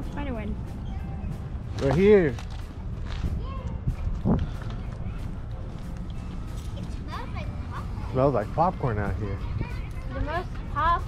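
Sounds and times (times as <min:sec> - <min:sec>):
wind on microphone: 0:02.8 - 0:05.8.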